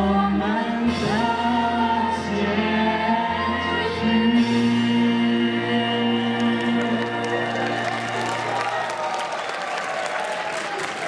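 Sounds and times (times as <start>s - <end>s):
audience applauding: 6.3s - 11.0s.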